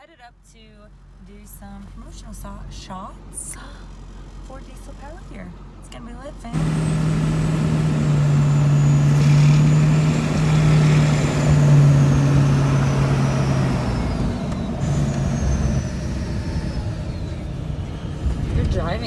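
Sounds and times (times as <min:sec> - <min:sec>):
vehicle engine and road noise: 0:00.0 - 0:19.0.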